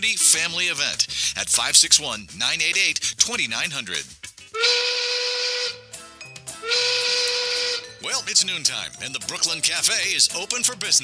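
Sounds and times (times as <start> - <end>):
whistle blasts: 4.6 - 5.9, 6.6 - 8.0
musical notes run: 4.6 - 10.5.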